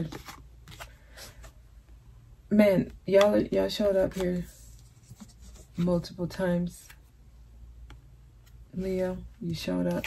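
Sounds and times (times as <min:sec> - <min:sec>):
tarot card handling clicks and rustles: 0:00.0 - 0:02.0, 0:02.8 - 0:06.2.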